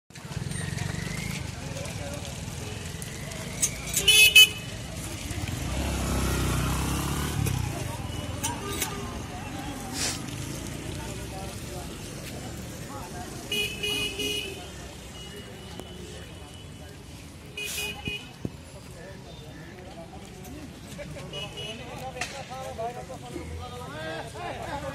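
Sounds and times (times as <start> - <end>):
street traffic: 0.1 - 24.9
vehicle horns honking: 4.0 - 4.8, 13.5 - 16.7, 17.5 - 18.4
vehicle engine rumble passing: 4.6 - 13.5.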